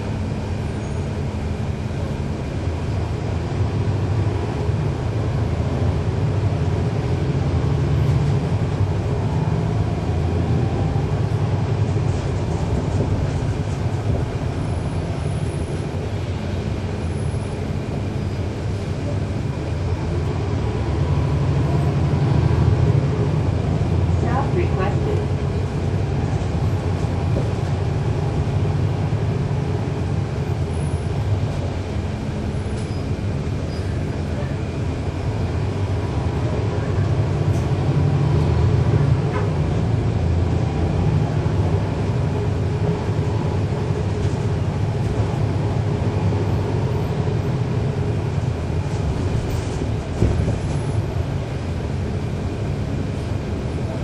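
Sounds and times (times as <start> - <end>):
bus diesel engine running: 0.0 - 54.0.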